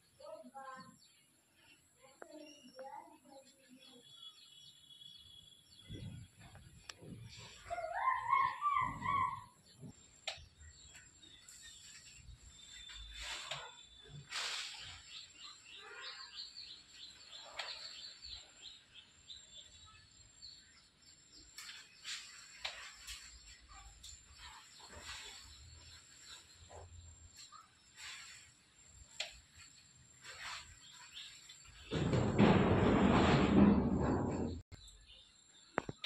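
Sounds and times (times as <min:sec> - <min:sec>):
birds calling: 0:04.2 - 0:32.7
high bird chirps: 0:07.6 - 0:14.2.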